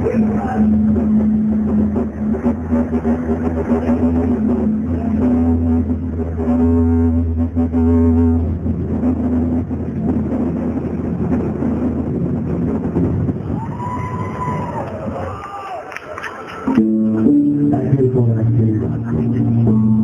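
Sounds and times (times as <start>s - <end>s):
short gliding tone: 0.0s - 11.9s
music: 0.0s - 14.6s, 16.6s - 20.0s
low drone: 0.0s - 15.5s, 16.4s - 20.0s
rumbling noisy bed: 0.0s - 15.6s.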